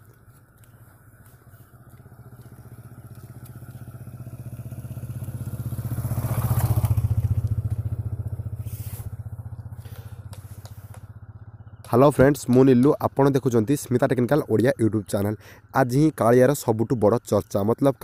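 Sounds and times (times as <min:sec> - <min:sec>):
vehicle engine passing by: 0:00.1 - 0:14.4.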